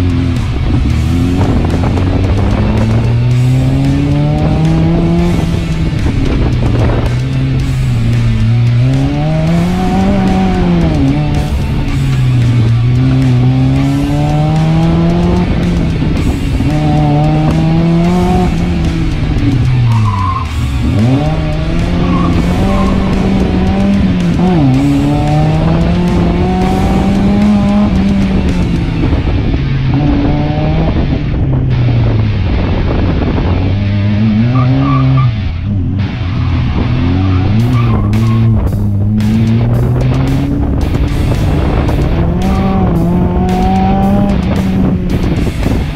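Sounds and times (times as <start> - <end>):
car engine revving hard: 0.0 - 45.9.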